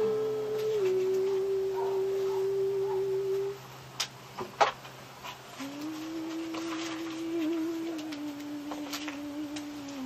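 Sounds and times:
steady pure tone: 0:00.0 - 0:04.2, 0:05.2 - 0:10.0.

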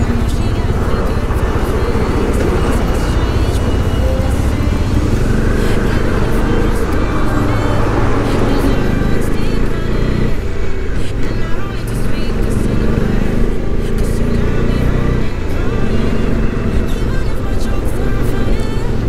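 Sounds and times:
heavy rumble of truck engines: 0:00.0 - 0:19.0
road noise: 0:00.0 - 0:19.0.

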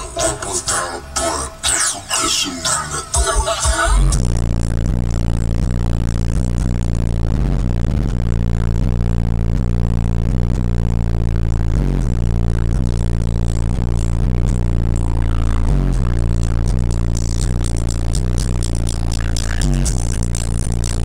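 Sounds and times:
car stereo sub-bass: 0:00.0 - 0:21.0.

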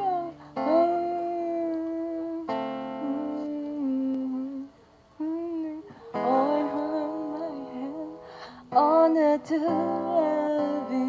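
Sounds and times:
acoustic guitar: 0:00.0 - 0:11.0
woman humming long notes: 0:00.0 - 0:11.0.

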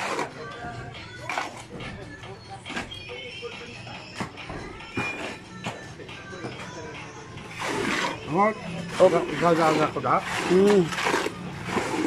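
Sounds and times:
shovel scraping wet concrete: 0:00.0 - 0:00.4, 0:01.3 - 0:01.6, 0:07.4 - 0:12.0
workers' voices: 0:00.0 - 0:12.0.

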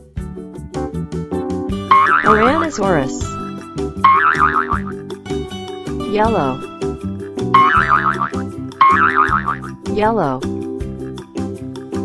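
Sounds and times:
children's music with steady beat: 0:01.5 - 0:12.0
cartoon boing: 0:01.9 - 0:02.6, 0:04.1 - 0:05.0, 0:07.6 - 0:09.8.

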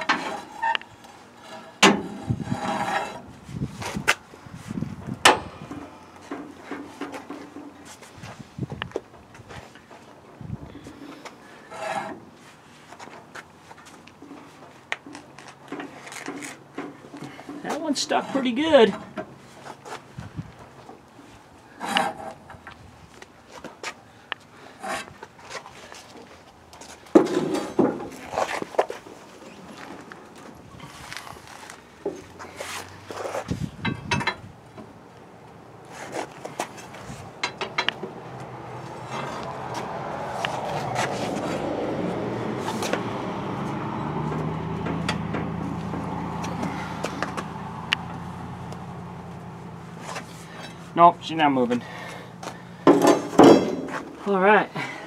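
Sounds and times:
pry bar clanking on metal: 0:52.9 - 0:54.0.

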